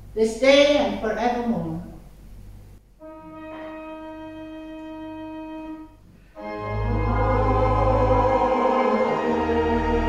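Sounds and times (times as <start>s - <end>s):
church organ chords: 3.0s - 10.0s
deep organ pedal bass: 6.4s - 10.0s.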